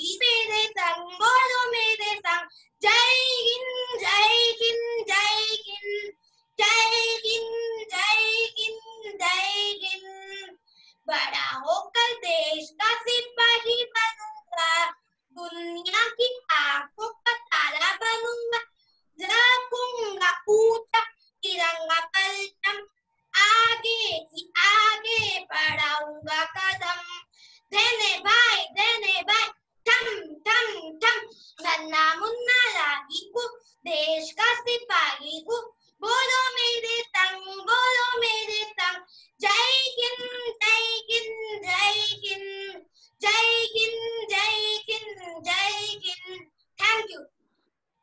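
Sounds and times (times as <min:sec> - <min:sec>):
child singing unaccompanied: 0:00.0 - 0:47.3.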